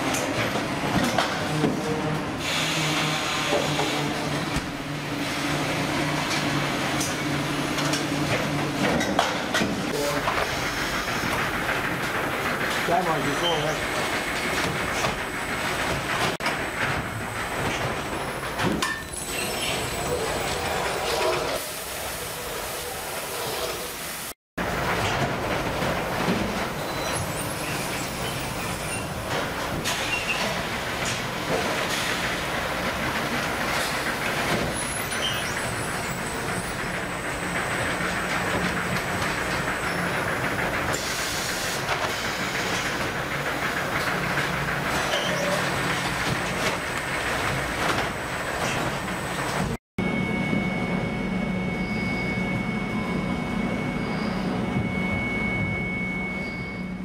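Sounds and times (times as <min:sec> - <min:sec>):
machine hum with high whine: 0:47.4 - 0:57.0.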